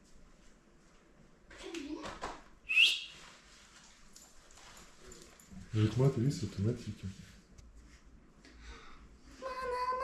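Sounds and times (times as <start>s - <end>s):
person whistling: 2.7s - 3.1s.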